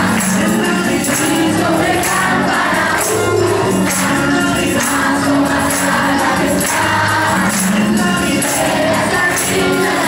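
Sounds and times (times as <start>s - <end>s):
group singing a carol in unison: 0.0s - 10.0s.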